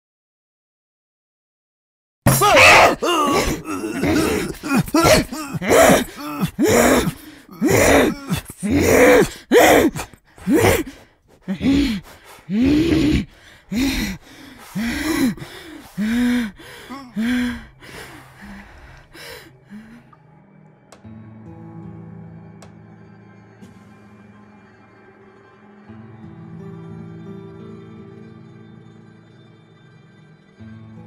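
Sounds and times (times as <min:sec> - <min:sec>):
person groaning and gasping: 0:02.3 - 0:20.2.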